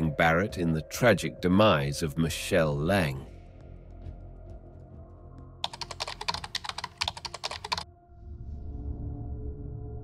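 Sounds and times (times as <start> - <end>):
low background music: 0.0 - 10.0
rapid sharp clicks: 5.6 - 7.8.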